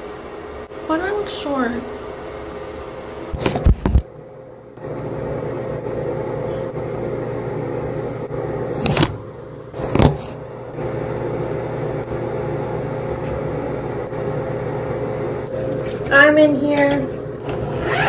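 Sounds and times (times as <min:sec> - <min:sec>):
ventilation fan humming: 0:00.0 - 0:18.0.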